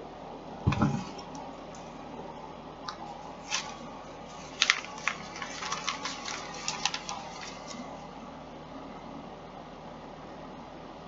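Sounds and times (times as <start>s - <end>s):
packaging crinkling and rustling: 3.0s - 8.1s.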